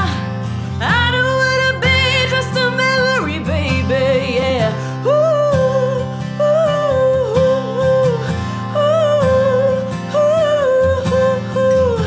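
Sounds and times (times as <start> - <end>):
guitar accompaniment: 0.0 - 12.0
person singing wordless melody: 0.0 - 12.0.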